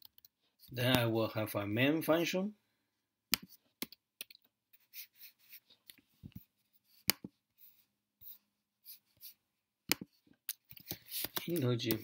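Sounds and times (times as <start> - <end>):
keyboard and mouse clicks: 3.3 - 4.5, 9.9 - 12.0.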